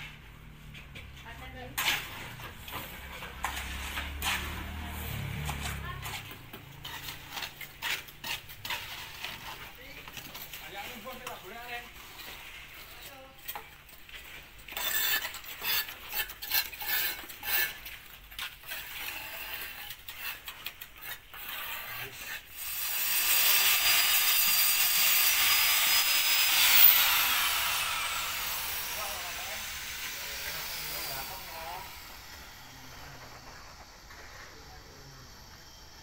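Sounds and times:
masonry scraping and tapping: 0.0 - 34.9
angle grinder whining: 22.6 - 36.0.

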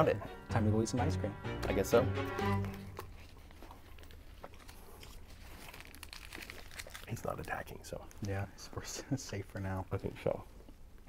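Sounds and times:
paper wrappers crinkling: 2.5 - 8.4
quiet chewing: 2.7 - 8.3.

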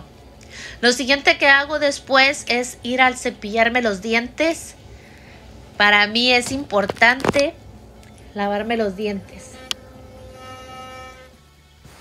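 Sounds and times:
electric toothbrush buzzing: 9.2 - 11.7.

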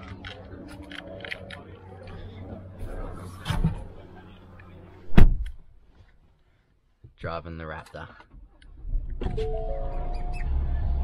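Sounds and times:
car door shutting thump: 5.1 - 5.6.

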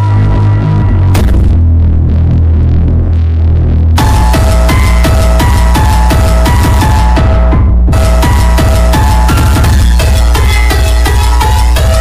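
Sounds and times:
electronic dance music: 0.0 - 12.0
heavy throbbing bass: 0.0 - 12.0
drum beat: 4.0 - 12.0
repeating synth melody: 4.0 - 12.0.

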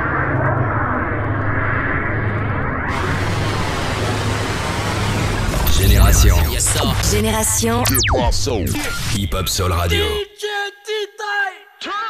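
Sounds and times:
rushing jet-like noise: 2.9 - 7.0
deep rumble: 5.3 - 9.1.

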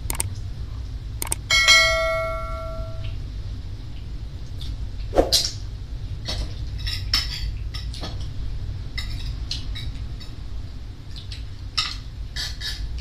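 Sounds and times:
quick click: 0.0 - 0.3
bell-like ding: 1.7 - 3.0.

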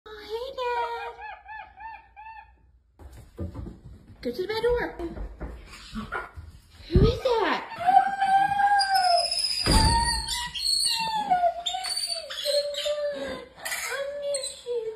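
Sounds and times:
monkey high-pitched calls: 1.0 - 2.6.

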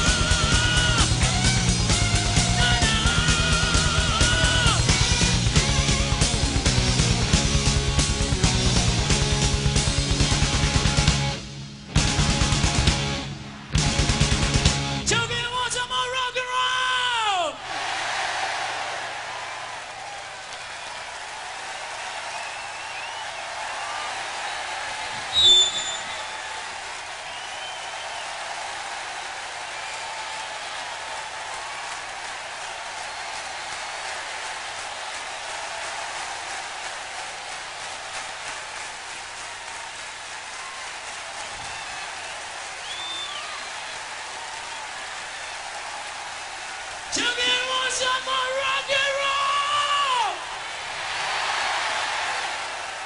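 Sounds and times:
audience clapping and cheering: 0.0 - 11.2, 11.9 - 15.4, 17.3 - 53.0
loud shrill whistle: 25.2 - 26.6, 27.3 - 28.3, 42.8 - 43.8.

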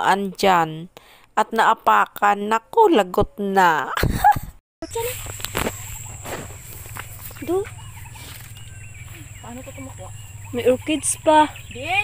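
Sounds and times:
footsteps through brush: 5.0 - 10.6
dry twigs and leaves crackling: 5.0 - 11.8.

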